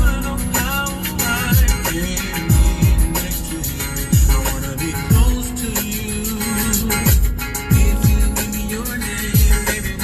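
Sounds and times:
rhythm and blues song with singing: 0:00.0 - 0:10.0.

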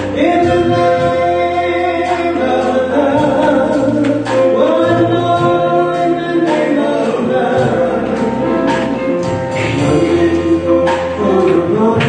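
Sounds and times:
gospel band playing: 0:00.0 - 0:12.0.

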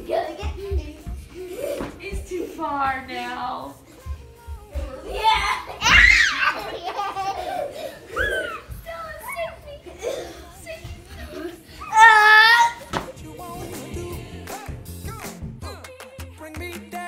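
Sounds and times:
toddler and woman laughing: 0:00.0 - 0:02.6, 0:05.1 - 0:10.6
background music: 0:10.0 - 0:17.0.

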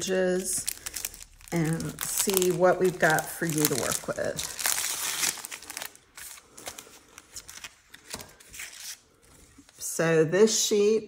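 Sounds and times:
plastic packaging crinkling: 0:00.0 - 0:09.8.

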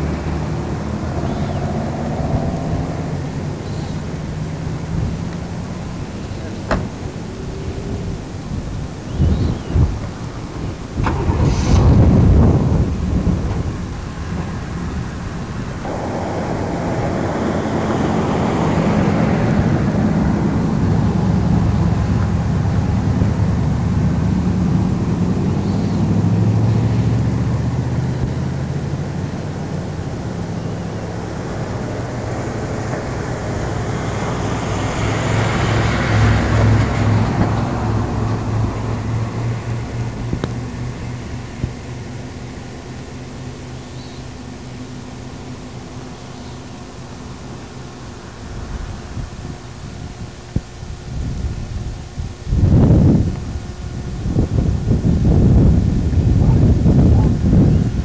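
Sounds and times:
wind buffeting microphone: 0:00.0 - 0:42.6, 0:48.4 - 0:58.0
vehicle engine humming: 0:00.0 - 0:58.0.

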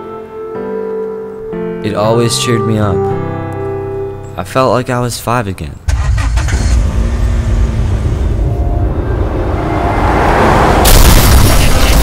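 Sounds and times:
deep rumble: 0:06.7 - 0:12.0.

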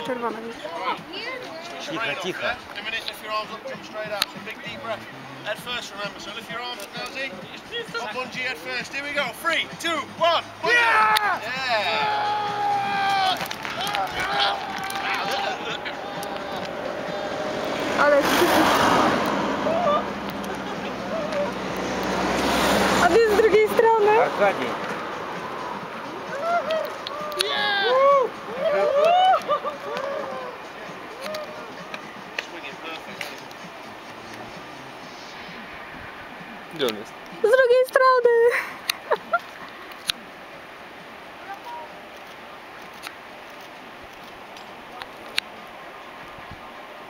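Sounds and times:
people yelling and screaming: 0:09.7 - 0:24.4, 0:25.5 - 0:32.4
wind noise on microphone: 0:46.2 - 0:46.9.

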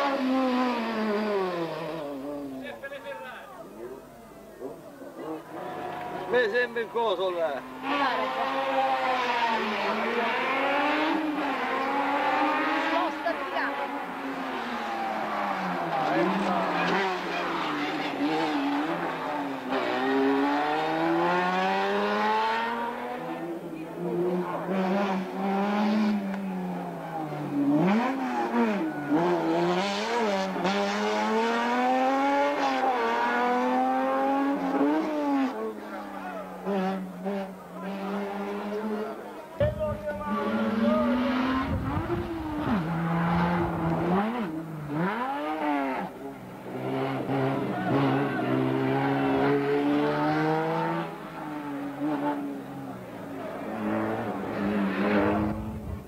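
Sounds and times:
race car engine revving: 0:00.0 - 0:02.6, 0:05.2 - 0:56.0.

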